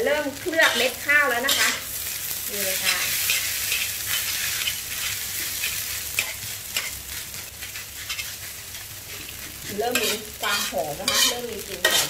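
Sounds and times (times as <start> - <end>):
rice sizzling in a wok: 0.0 - 12.0
metal spatula scraping a pan: 0.4 - 12.0.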